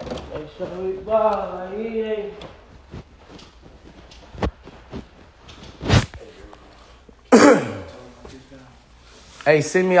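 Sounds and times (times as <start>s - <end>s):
man clearing his throat: 7.3s - 8.1s.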